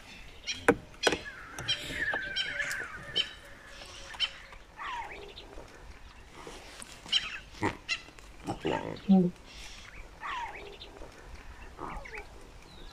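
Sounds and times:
lion cubs mewing: 0:00.4 - 0:12.4.

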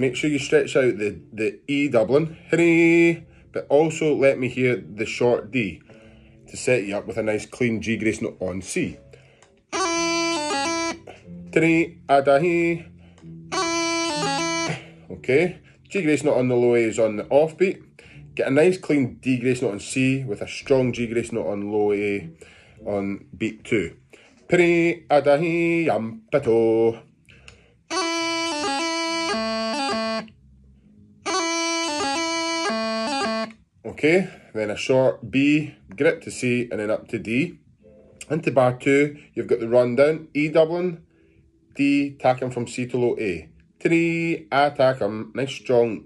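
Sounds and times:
practice chanter with grace notes: 0:09.8 - 0:11.2, 0:13.2 - 0:14.9, 0:27.9 - 0:30.3, 0:31.2 - 0:33.6
person speaking: 0:09.8 - 0:27.1.

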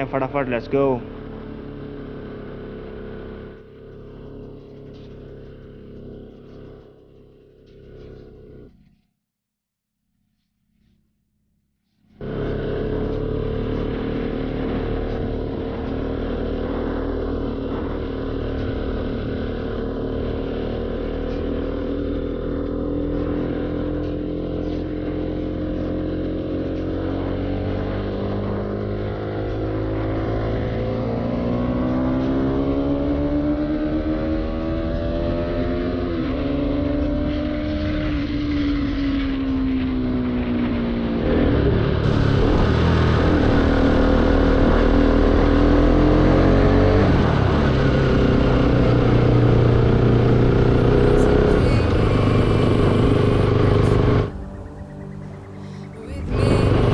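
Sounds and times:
road and wind noise: 0:00.0 - 0:08.9, 0:12.1 - 0:56.9
motorcycle engine running: 0:00.0 - 0:09.1, 0:11.9 - 0:56.9.

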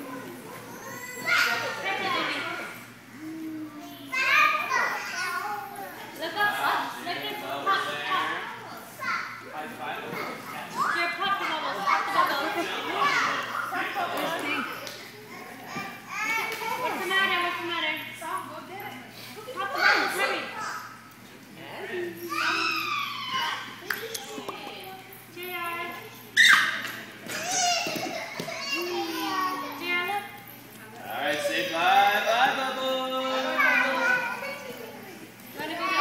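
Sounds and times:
toddlers shouting excitedly: 0:00.0 - 0:02.3, 0:04.0 - 0:06.0, 0:22.2 - 0:23.9, 0:26.3 - 0:30.0, 0:33.2 - 0:36.0
children chattering: 0:00.0 - 0:06.8, 0:22.2 - 0:36.0.

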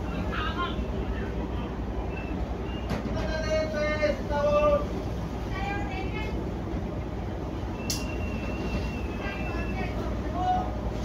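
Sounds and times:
ship low rumble: 0:00.0 - 0:11.0
wind: 0:00.0 - 0:11.0
sharp click: 0:07.8 - 0:08.1.

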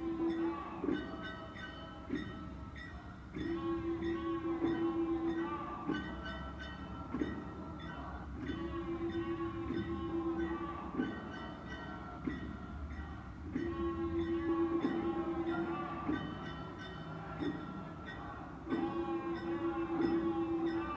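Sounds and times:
people singing: 0:00.0 - 0:20.9.

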